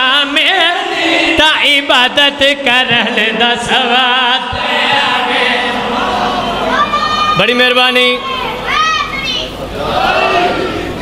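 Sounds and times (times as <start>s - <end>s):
hall background murmur: 4.4s - 11.0s.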